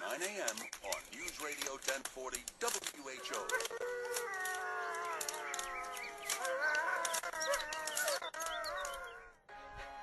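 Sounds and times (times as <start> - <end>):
rooster crowing: 3.7 - 9.3.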